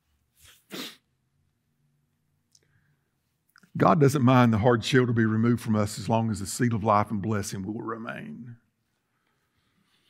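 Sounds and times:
man's sharp breathy burst: 0.4 - 1.1.

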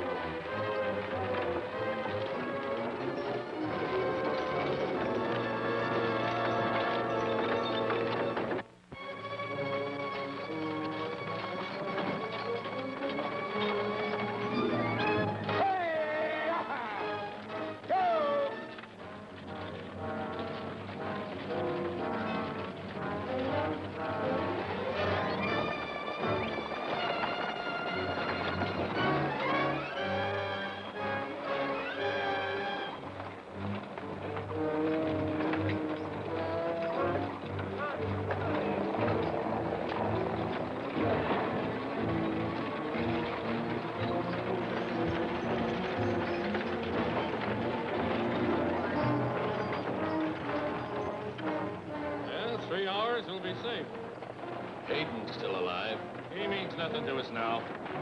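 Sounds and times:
dramatic orchestral film music: 0.0 - 58.0
horses' hooves clip-clopping: 0.0 - 58.0
wooden wagon wheels rattling: 0.0 - 58.0.

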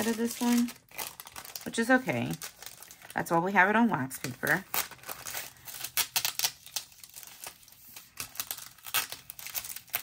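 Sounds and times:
paper and sticker sheet crinkling: 0.0 - 10.0.

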